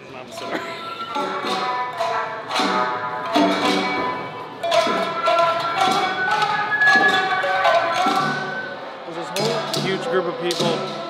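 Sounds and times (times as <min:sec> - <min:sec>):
plucked string instruments playing: 0:00.2 - 0:11.0.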